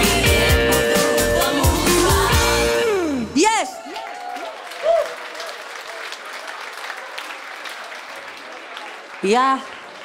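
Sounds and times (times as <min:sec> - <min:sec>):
audience applause: 0:03.8 - 0:10.0.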